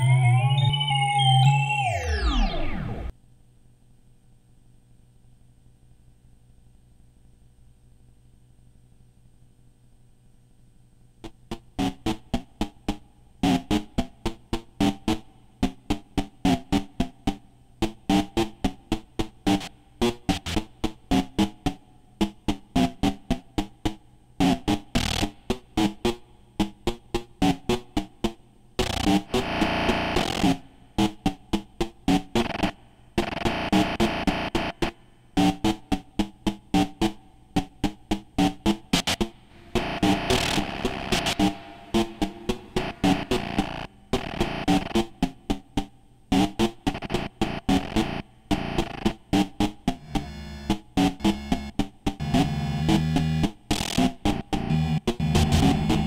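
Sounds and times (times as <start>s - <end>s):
synthesized hits and blips: 28.8s - 45.6s, 46.3s - 56.0s
distorted noisy synth swells: 39.0s - 45.0s.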